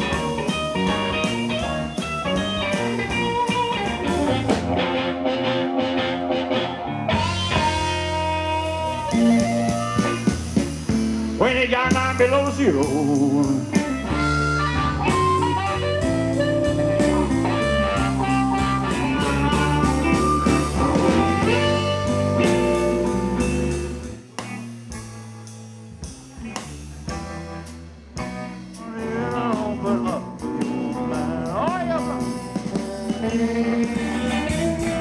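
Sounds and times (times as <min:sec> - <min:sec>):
blues band playing: 0:00.0 - 0:35.0
electric guitar: 0:00.0 - 0:35.0.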